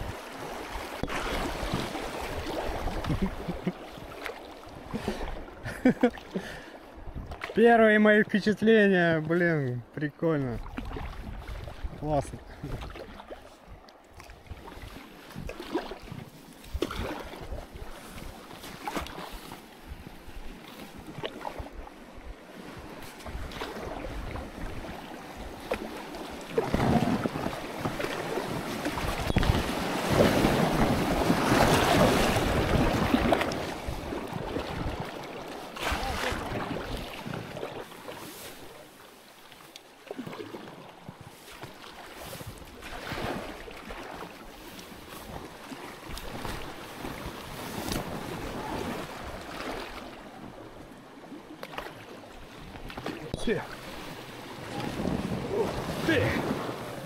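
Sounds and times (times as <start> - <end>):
paddle strokes splashing: 0.0 - 57.0
water rushing around boat: 0.0 - 57.0.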